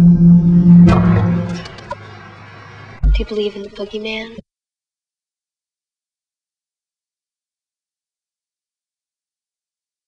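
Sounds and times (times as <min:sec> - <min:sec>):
deep roar: 0:00.0 - 0:02.8.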